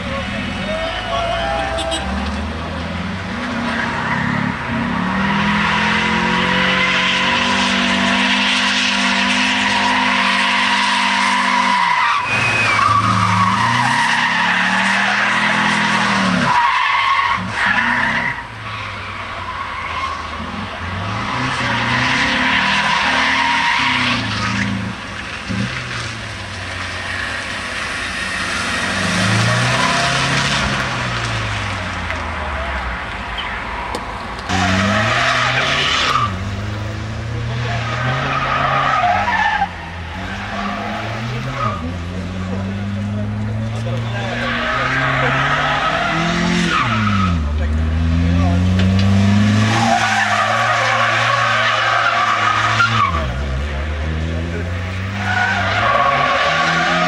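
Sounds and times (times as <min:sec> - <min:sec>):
car engine revving hard: 0:02.1 - 0:18.4, 0:20.4 - 0:31.9, 0:34.5 - 0:57.0
tyres squealing: 0:03.6 - 0:31.8, 0:37.5 - 0:53.4, 0:54.8 - 0:57.0.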